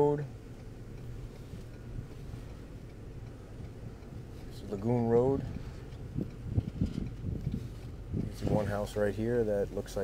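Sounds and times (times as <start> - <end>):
vehicle moving slowly: 0.0 - 10.0.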